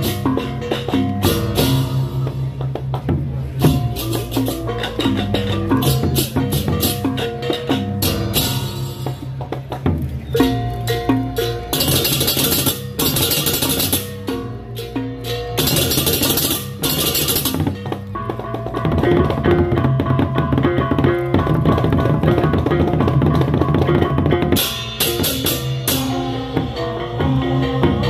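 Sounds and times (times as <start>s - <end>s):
drums and gongs playing: 0.0s - 28.0s
hand cymbals crashing: 10.4s - 17.8s, 24.6s - 27.7s.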